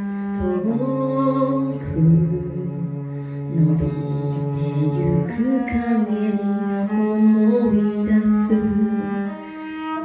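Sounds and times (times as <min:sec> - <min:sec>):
bowed cello low notes: 0:00.0 - 0:10.0
keyboard accompaniment: 0:00.0 - 0:10.0.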